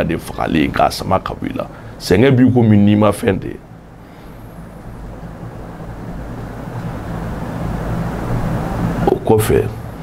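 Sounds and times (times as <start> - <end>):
low engine-like rumble: 3.6 - 10.0.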